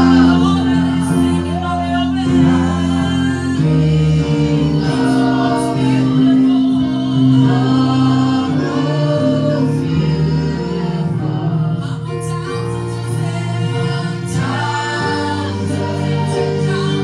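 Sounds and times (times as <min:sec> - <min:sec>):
long held chords: 0:00.0 - 0:17.0
woman singing gospel: 0:00.0 - 0:17.0.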